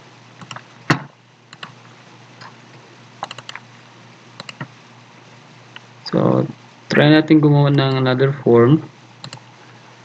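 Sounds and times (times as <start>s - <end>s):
low steady hum: 0.0s - 10.0s
computer keyboard and mouse clicks: 0.4s - 1.8s, 3.2s - 3.6s, 4.4s - 4.7s, 9.2s - 9.5s.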